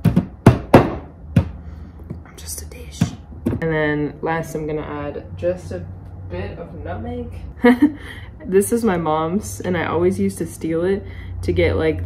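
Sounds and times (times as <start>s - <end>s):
pestle knocking in stone mortar: 0.0s - 1.6s.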